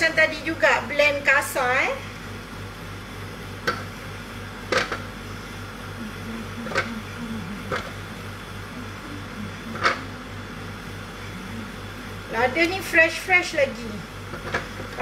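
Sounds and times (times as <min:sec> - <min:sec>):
low hum: 0:02.1 - 0:14.9.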